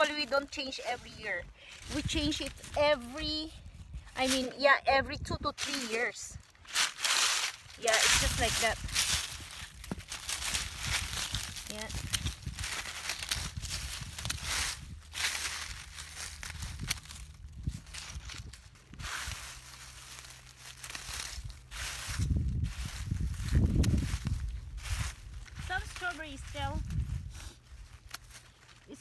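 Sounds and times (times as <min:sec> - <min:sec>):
dry foliage crackling and rustling: 0:00.0 - 0:29.0
scissors snipping dry leaves: 0:05.6 - 0:21.5, 0:23.7 - 0:24.4, 0:25.6 - 0:29.0
low rumble: 0:07.5 - 0:28.1.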